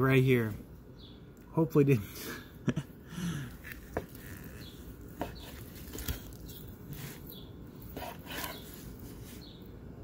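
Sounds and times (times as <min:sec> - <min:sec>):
knife slicing roast on wooden board: 0:03.6 - 0:09.5.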